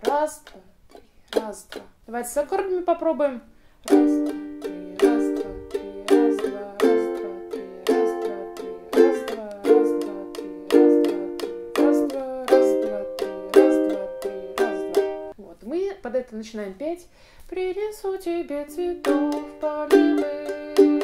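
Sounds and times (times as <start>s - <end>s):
ukulele strumming chords: 3.9s - 15.4s, 18.9s - 21.0s.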